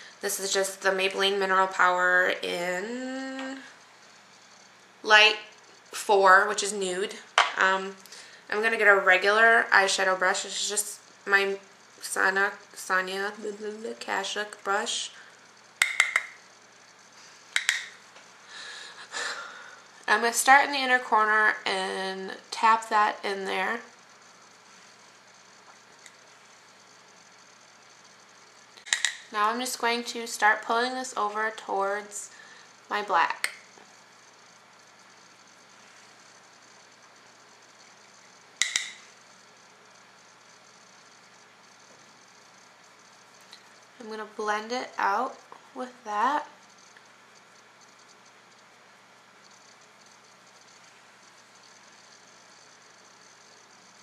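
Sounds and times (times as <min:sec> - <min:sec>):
faint room hiss: 0:00.0 - 0:54.0.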